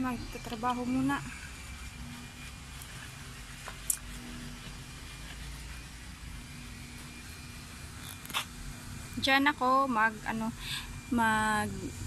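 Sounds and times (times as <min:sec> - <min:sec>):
faint constant hum: 0:00.0 - 0:12.0.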